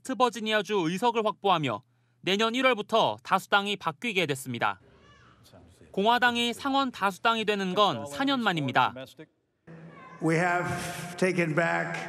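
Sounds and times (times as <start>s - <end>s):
man speaking into a microphone: 0.0s - 4.8s, 5.4s - 12.0s.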